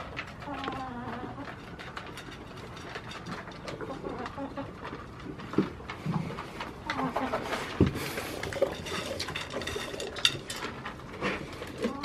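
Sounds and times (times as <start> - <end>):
goats crunching feed in plastic bowls: 0.0 - 12.0.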